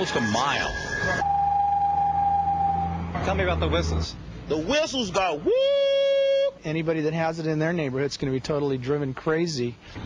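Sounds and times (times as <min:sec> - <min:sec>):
exhaust whistle: 0:00.0 - 0:04.0.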